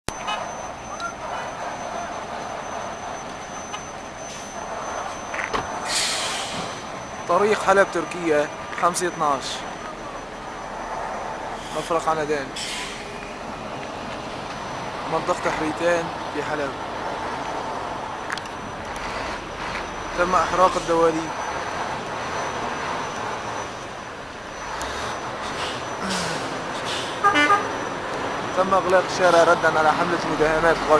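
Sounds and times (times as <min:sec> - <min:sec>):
road noise: 0:00.0 - 0:30.9
truck engines rumbling: 0:00.1 - 0:30.9
vehicle horn toot: 0:27.2 - 0:27.7.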